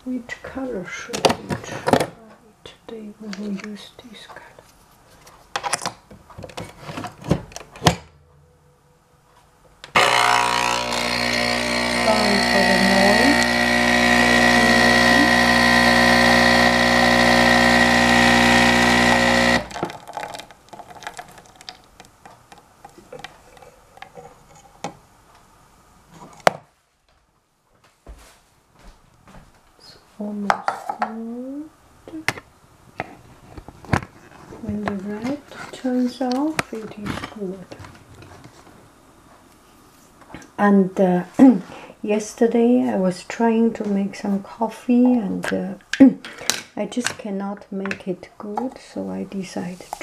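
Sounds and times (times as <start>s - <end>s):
coffee machine pump buzzing: 9.9s - 20.4s.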